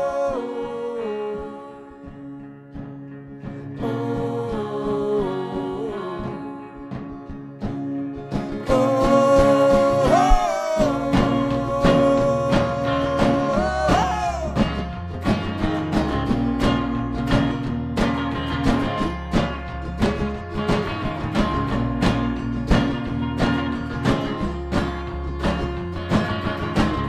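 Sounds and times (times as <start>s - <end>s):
electric guitar: 0.0s - 27.0s
strummed acoustic guitar: 0.0s - 27.0s
drum hits: 8.7s - 27.0s.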